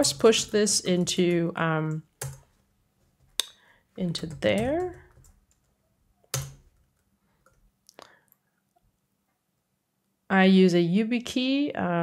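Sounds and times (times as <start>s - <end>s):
computer keyboard keystroke: 6.3s - 7.7s.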